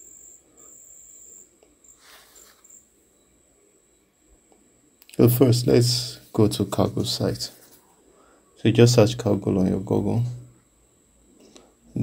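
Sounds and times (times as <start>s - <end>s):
faint high-pitched tone: 0.0s - 7.6s
low background hiss: 0.0s - 12.0s.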